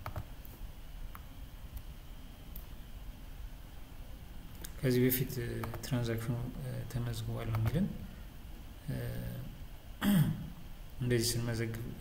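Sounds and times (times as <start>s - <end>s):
man saying uh: 8.9s - 9.5s
man clearing throat: 10.0s - 10.6s.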